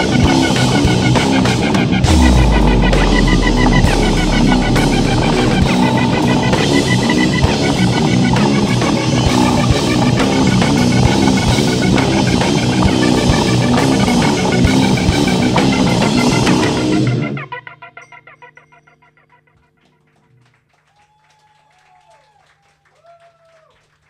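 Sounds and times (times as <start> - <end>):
rock band playing: 0.0 - 17.5
deep low held note: 2.0 - 8.1.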